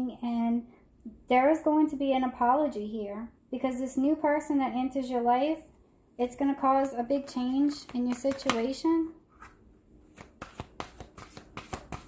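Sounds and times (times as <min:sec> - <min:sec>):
cards being shuffled: 0:06.8 - 0:12.0.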